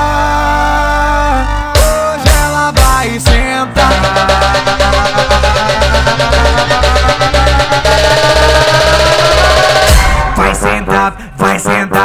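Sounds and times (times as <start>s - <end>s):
pulsing bass: 0.0s - 12.0s
fast electronic drum beat: 1.8s - 10.7s.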